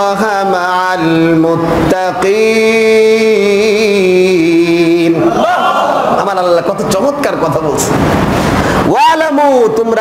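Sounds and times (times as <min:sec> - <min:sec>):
man chanting into a microphone: 0:00.0 - 0:05.3, 0:08.8 - 0:10.0.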